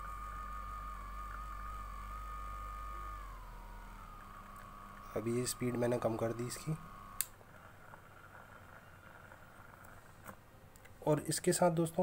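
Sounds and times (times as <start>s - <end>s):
electric massager whining: 0.0s - 10.7s.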